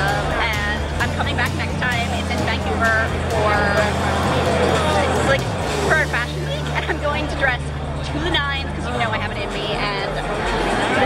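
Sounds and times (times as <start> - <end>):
music with deep bass notes: 0.0 - 11.0
voices talking: 0.0 - 11.0.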